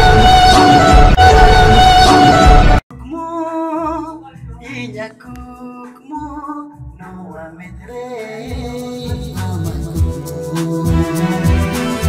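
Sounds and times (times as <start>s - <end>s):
instrumental backing music: 0.0s - 12.0s
man singing: 2.0s - 12.0s
beat with bass: 8.5s - 12.0s.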